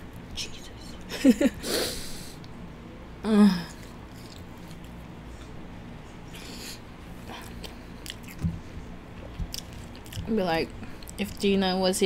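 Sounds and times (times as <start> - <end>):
person chewing fries: 3.7 - 5.6, 6.3 - 8.4, 9.2 - 10.3.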